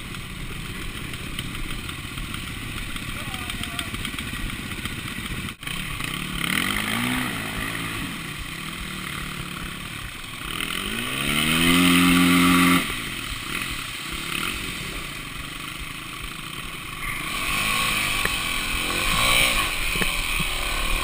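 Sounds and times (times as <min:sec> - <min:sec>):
dirt bike engine revving: 0:00.0 - 0:21.0.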